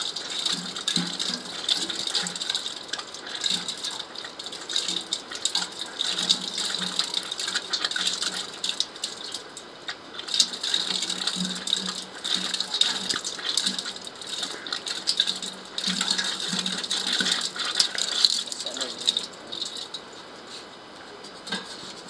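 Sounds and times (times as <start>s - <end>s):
clinking patter on metal vessels: 0.0s - 20.1s
water splashing from a tap: 0.0s - 20.1s.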